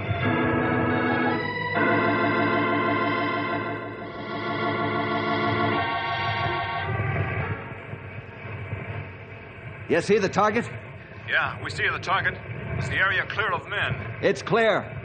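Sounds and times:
electric organ chords: 0.0s - 10.2s.

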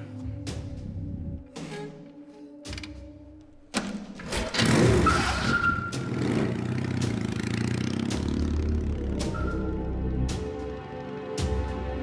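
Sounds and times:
motorcycle engine starting and revving: 3.8s - 9.7s.

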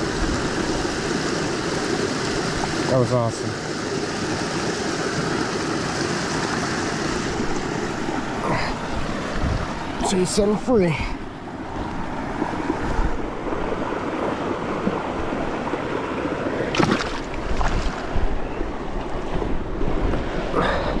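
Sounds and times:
water rushing: 0.0s - 21.0s
wind rumbling on microphone: 7.2s - 10.1s, 11.5s - 15.8s, 16.7s - 20.8s.

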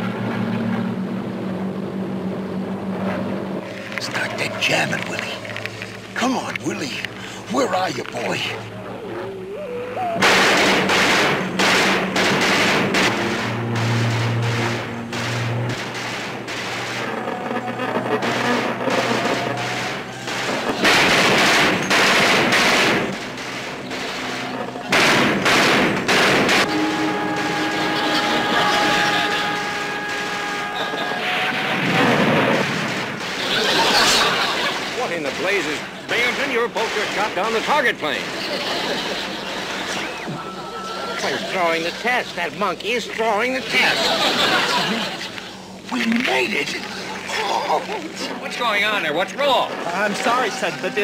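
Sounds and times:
machine-gun fire bursts: 10.2s - 17.4s, 18.2s - 31.0s, 31.8s - 40.2s
held music notes: 26.6s - 31.2s.

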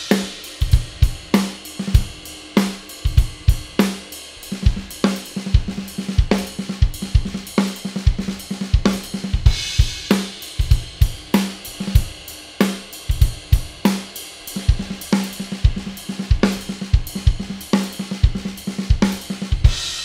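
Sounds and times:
cymbal crash: 0.0s - 4.0s
drum kit swung groove: 0.0s - 20.0s.

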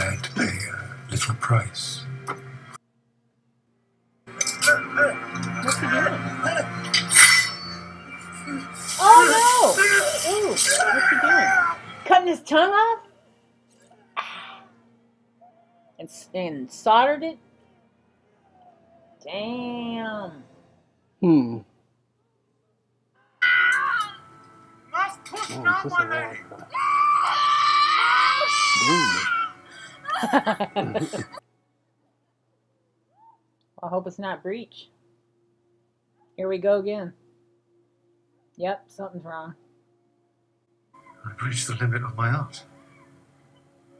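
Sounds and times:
low ominous music: 0.0s - 2.8s, 3.4s - 21.5s, 23.6s - 31.4s, 34.0s - 43.9s
woman screaming: 8.9s - 11.9s, 23.4s - 24.2s, 26.7s - 30.4s
loud strained cry: 9.0s - 11.9s, 26.7s - 29.9s.

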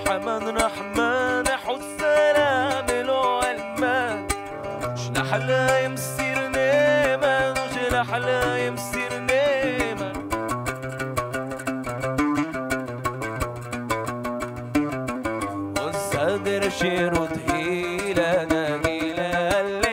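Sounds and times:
man singing melismatic lines: 0.0s - 10.8s, 15.8s - 19.9s
oud plucked notes: 0.0s - 19.9s.

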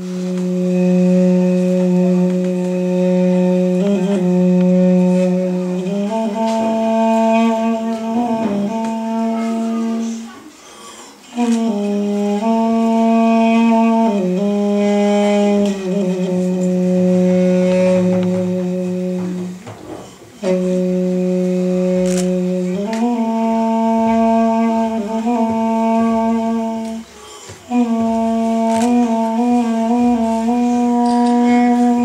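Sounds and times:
duduk holding a long note: 0.0s - 10.6s, 11.2s - 32.0s.

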